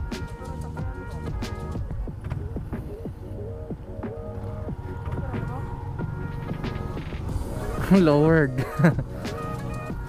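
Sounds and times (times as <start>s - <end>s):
background music: 0.0s - 10.0s
motorcycle engine rumble: 0.0s - 10.0s
wind: 0.0s - 10.0s.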